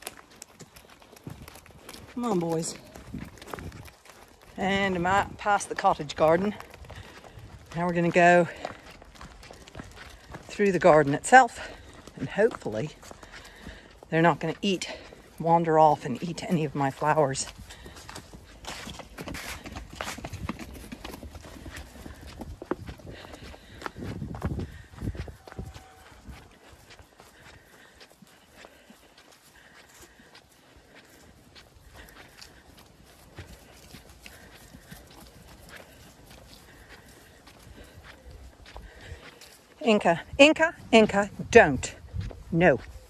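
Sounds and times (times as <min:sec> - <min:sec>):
footsteps on grass: 0:00.0 - 0:43.0
sheep hooves trotting on grass: 0:00.0 - 0:43.0.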